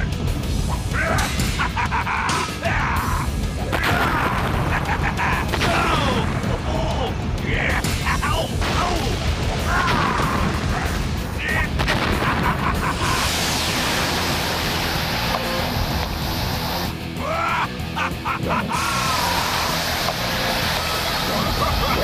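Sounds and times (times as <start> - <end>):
background music: 0.0 - 22.0
long rushing blast effect: 13.0 - 17.0.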